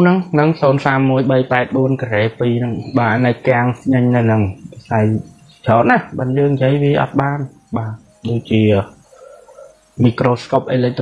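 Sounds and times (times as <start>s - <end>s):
faint indistinct sound: 0.0s - 11.0s
man speaking: 0.0s - 11.0s.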